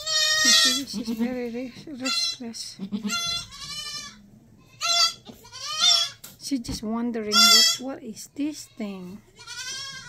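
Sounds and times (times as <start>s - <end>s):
goat bleating: 0.0s - 6.2s, 7.3s - 7.8s, 8.5s - 10.0s.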